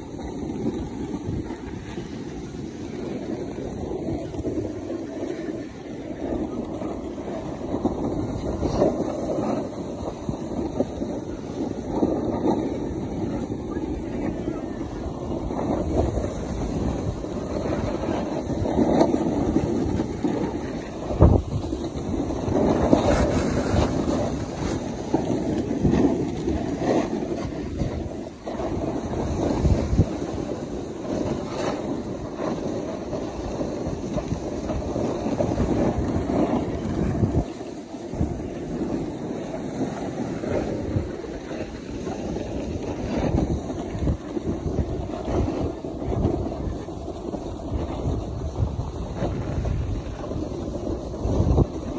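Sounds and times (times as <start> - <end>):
snowboard scraping over snow: 0.0 - 51.9
wind buffeting microphone: 0.0 - 51.9.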